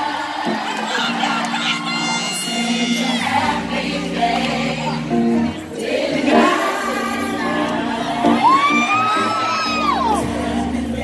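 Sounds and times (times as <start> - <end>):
audience cheering and whooping: 0.0 - 3.9, 6.4 - 10.7
band backing: 0.0 - 11.0
woman singing: 0.0 - 11.0.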